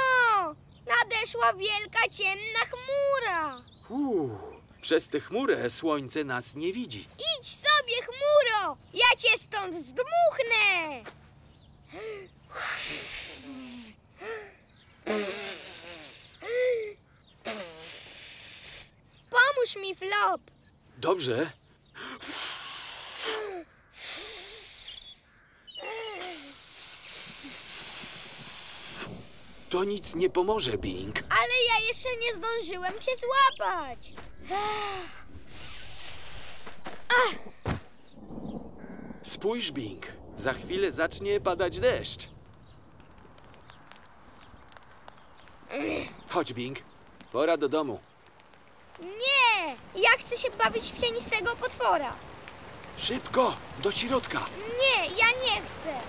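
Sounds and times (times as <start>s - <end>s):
cartoon child exhaling and sighing: 22.2s - 25.0s, 25.8s - 27.5s
soft thump on grass: 37.6s - 38.0s.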